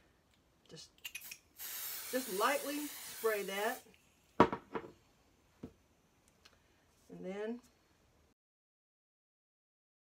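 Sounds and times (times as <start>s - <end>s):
aerosol can spraying hiss: 1.2s - 3.9s.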